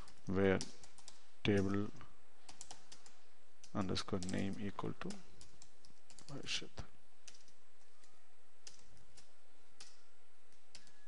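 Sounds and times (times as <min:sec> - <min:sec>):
computer keyboard keystrokes: 0:00.0 - 0:01.8, 0:02.5 - 0:06.4, 0:07.2 - 0:11.0
steady background hiss: 0:00.0 - 0:11.0.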